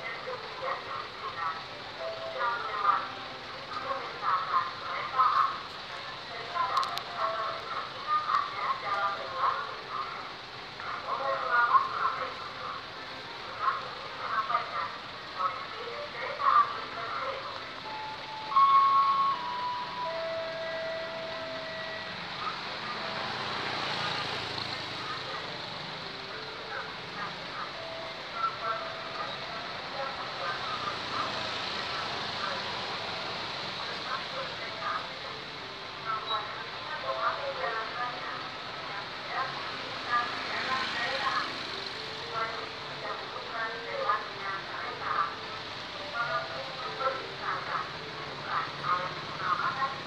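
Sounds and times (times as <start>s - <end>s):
people's voices: 0.0s - 50.0s
road traffic: 0.0s - 50.0s
vehicle engines: 0.0s - 50.0s.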